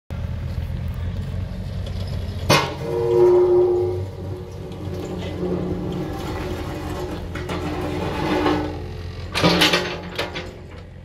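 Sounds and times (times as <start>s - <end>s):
diesel engine running: 0.1s - 11.0s
hydraulic whine: 2.4s - 11.0s
sharp metal clank: 2.5s - 5.8s.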